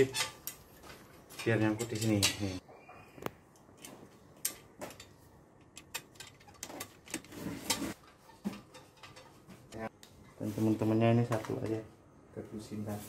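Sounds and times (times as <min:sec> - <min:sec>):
small metal parts clicking: 0:03.8 - 0:07.3.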